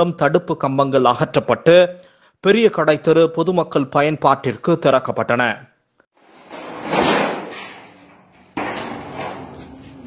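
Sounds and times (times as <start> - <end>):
metal sheet scraping: 6.2 - 10.0.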